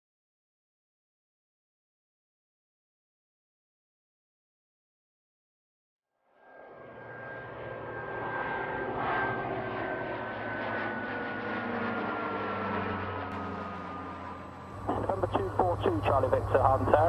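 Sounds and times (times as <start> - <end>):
propeller aircraft flying past: 6.3 - 17.0.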